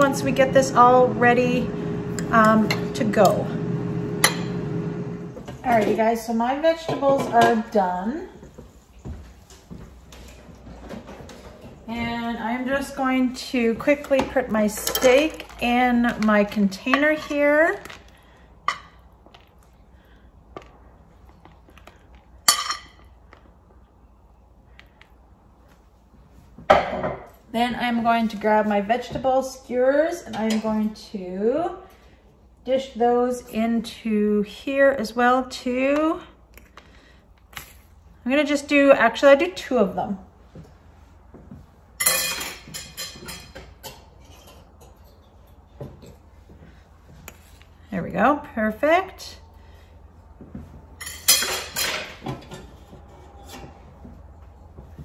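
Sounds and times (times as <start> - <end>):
cutlery clatter: 42.0 - 46.2, 51.0 - 52.8.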